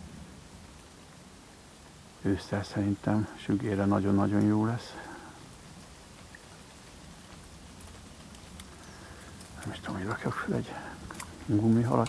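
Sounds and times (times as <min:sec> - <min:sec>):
light rain on water: 0:00.0 - 0:12.0
rain drops ticking: 0:00.0 - 0:12.0.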